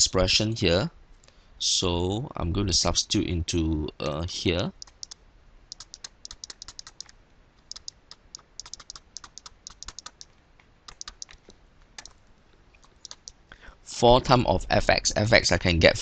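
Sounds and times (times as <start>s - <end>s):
stylus clicking on pen tablet: 4.8s - 12.2s, 12.8s - 13.4s.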